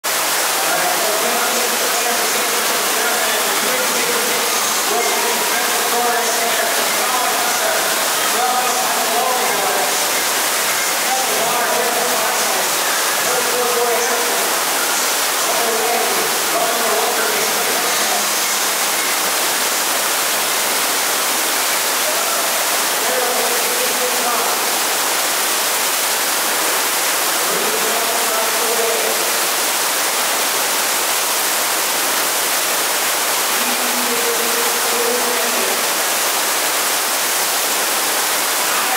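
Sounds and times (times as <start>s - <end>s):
rush of jetting water: 0.0s - 38.9s
people's voices: 0.5s - 19.2s, 22.0s - 24.7s, 33.6s - 35.8s, 38.6s - 38.9s.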